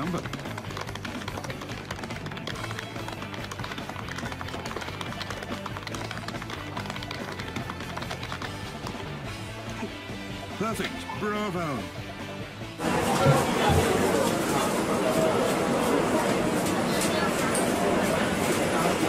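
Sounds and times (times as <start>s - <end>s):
tapping calculator keys: 0.0s - 9.0s
background music: 0.0s - 16.3s.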